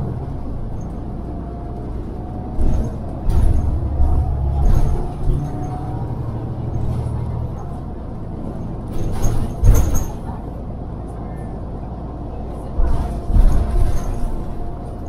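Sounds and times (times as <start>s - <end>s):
bus engine drone: 0.0s - 15.0s
road noise: 0.0s - 15.0s.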